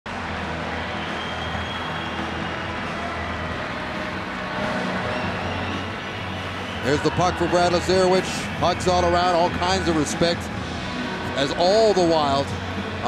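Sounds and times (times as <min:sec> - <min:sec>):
arena crowd noise: 0:00.1 - 0:13.0.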